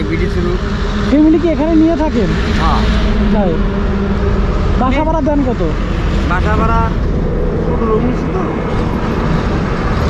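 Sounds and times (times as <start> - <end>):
engine hum: 0.0 - 10.0
road traffic rumble: 0.0 - 10.0.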